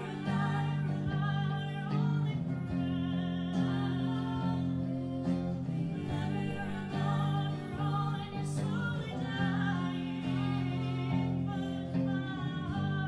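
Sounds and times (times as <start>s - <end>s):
acoustic guitar: 0.0s - 13.0s
women singing together: 0.0s - 13.0s.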